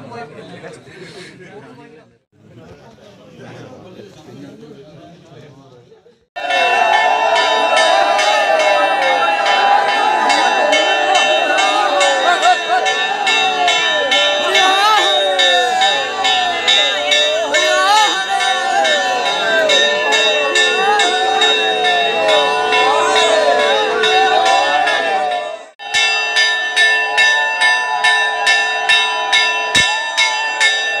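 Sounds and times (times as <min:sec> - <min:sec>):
crowd voices: 0:00.0 - 0:31.0
metal bells ringing: 0:06.4 - 0:31.0.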